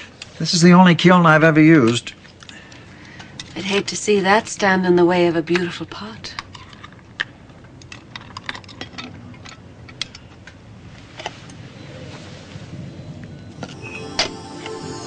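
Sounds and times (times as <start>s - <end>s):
soft background music: 13.6s - 15.0s.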